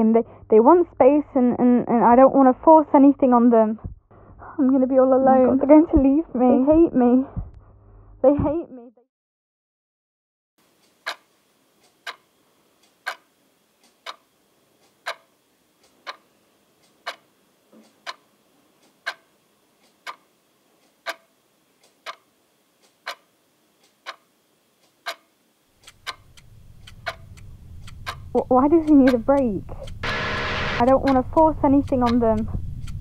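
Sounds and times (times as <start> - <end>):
wall clock ticking: 10.6 - 33.0
low rumble: 26.2 - 33.0.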